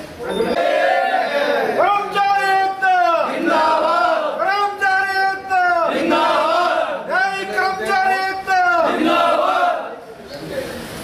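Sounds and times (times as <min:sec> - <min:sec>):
men chanting slogans: 0:00.5 - 0:10.0.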